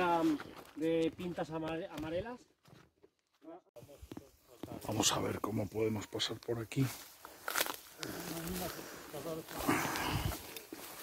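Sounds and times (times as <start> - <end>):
rustle of ferns and brambles: 3.8 - 11.0
footsteps on dry leaves: 4.0 - 11.0.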